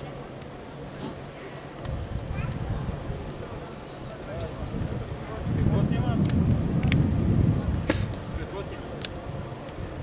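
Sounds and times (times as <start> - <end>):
wind buffeting microphone: 1.8 - 10.0.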